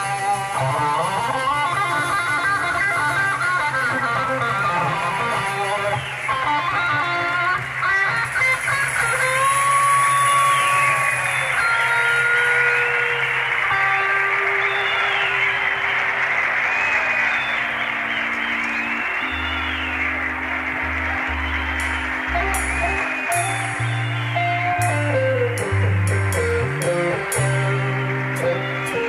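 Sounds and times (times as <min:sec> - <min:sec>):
electric guitar bending notes: 0:00.0 - 0:16.5, 0:17.4 - 0:29.0
blues-rock band playing: 0:00.0 - 0:29.0
heavy bass notes: 0:19.3 - 0:29.0.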